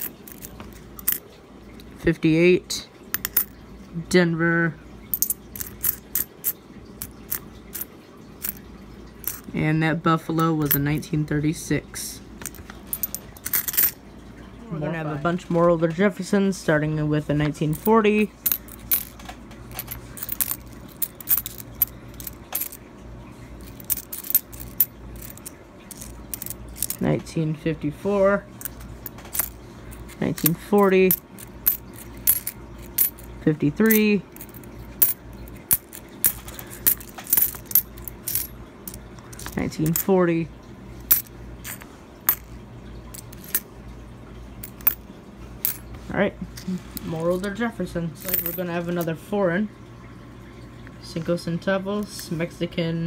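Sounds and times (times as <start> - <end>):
coins clinking: 0.0 - 1.3, 3.1 - 3.6, 5.1 - 8.6, 9.2 - 9.5, 12.4 - 14.0, 17.7 - 22.8, 23.6 - 27.1, 28.6 - 40.1, 41.1 - 42.5, 43.1 - 43.6, 44.6 - 45.0, 45.6 - 45.8, 48.2 - 48.7.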